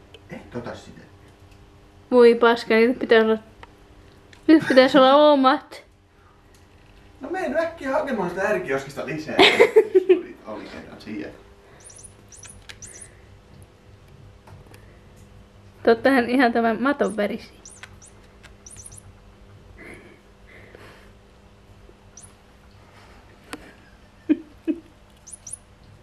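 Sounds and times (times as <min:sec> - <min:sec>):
faint high-pitched chirps: 0:11.8 - 0:13.2, 0:17.0 - 0:19.1, 0:22.1 - 0:22.4, 0:25.2 - 0:25.7
squeaking toy mouse: 0:11.8 - 0:13.2, 0:16.9 - 0:19.1, 0:22.2 - 0:22.4, 0:25.2 - 0:25.7.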